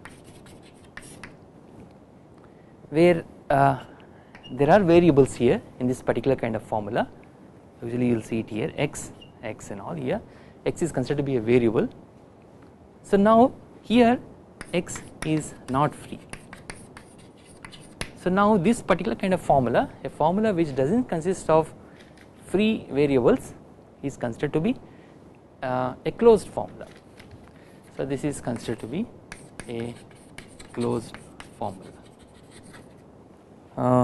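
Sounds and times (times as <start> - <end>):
chalk scratching on chalkboard: 0.0 - 1.4, 14.6 - 18.2, 27.7 - 33.0.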